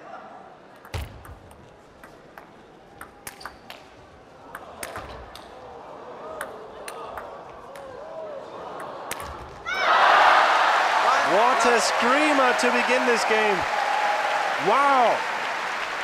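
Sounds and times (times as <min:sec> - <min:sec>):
crowd voices: 0:05.6 - 0:13.8
crowd cheering and applause: 0:09.7 - 0:16.0.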